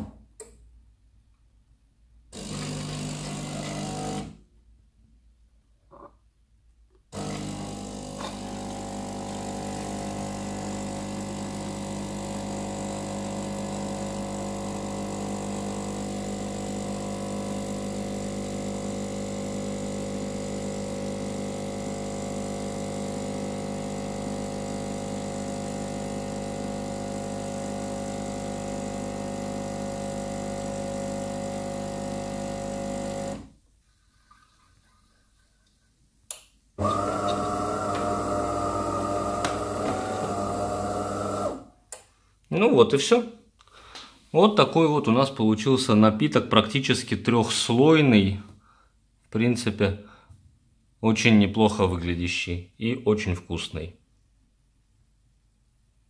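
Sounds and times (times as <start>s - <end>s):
click: 0.4s - 0.6s, 35.6s - 36.5s
coffee machine pump humming: 2.4s - 4.3s, 7.2s - 33.4s, 36.8s - 41.6s.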